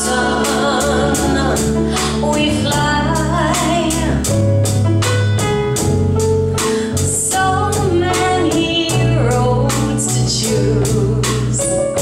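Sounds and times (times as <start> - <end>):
woman singing: 0.0 - 4.4, 6.9 - 12.0
band playing pop song: 0.0 - 12.0.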